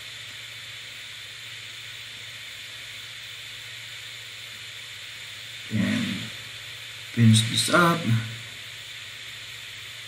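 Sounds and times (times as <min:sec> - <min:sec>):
background hiss: 0:00.0 - 0:10.0
faint low hum: 0:05.0 - 0:09.0
spoken word: 0:05.7 - 0:06.4, 0:07.2 - 0:08.4.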